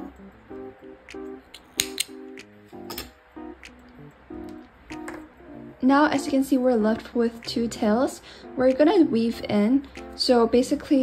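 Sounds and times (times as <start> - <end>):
soft music with plucked notes: 0.0 - 11.0.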